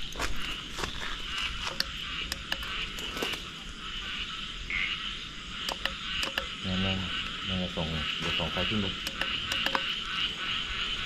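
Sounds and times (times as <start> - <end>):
frogs and insects trilling: 0.0 - 11.0.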